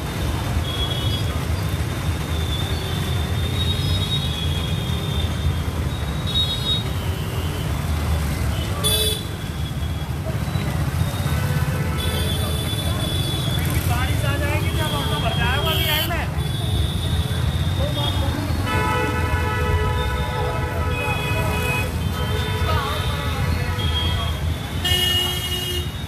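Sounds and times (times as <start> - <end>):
traffic and motorbikes rumble: 0.0 - 26.0.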